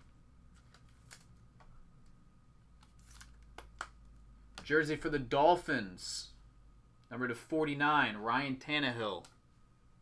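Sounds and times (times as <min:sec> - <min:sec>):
trading cards and packaging rustling: 0:00.5 - 0:01.4, 0:02.8 - 0:03.9.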